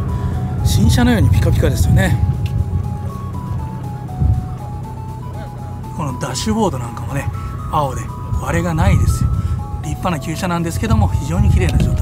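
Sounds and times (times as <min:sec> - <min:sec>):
low steady rumble: 0:00.0 - 0:12.0
simple melody of clear notes: 0:00.0 - 0:12.0.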